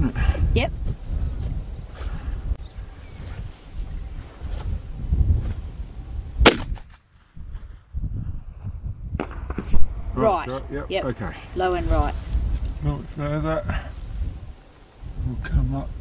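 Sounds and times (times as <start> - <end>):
rifle shot: 6.4 - 7.8.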